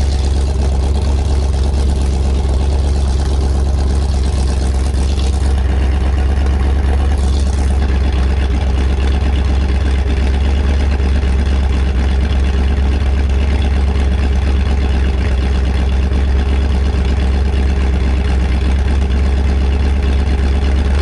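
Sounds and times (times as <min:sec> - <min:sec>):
engine idling with open exhaust: 0:00.0 - 0:21.0.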